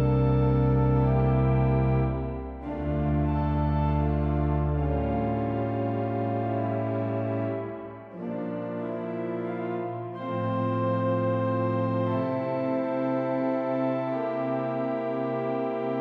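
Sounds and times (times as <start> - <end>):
pipe organ playing held chords: 0.0 - 16.0.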